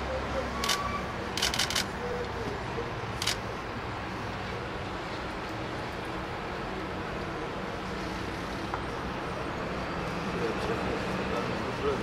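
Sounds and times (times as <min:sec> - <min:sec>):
road traffic noise: 0:00.0 - 0:12.0
sharp clicks: 0:01.4 - 0:01.9.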